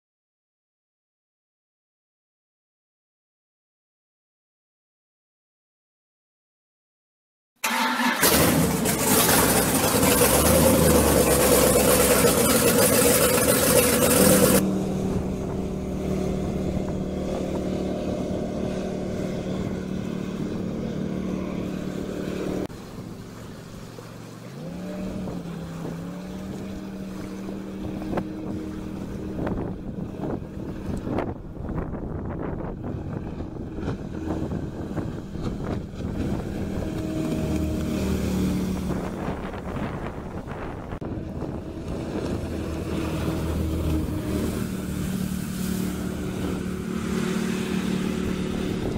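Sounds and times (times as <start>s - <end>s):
jet boat running: 7.6s - 48.9s
wind: 7.6s - 48.9s.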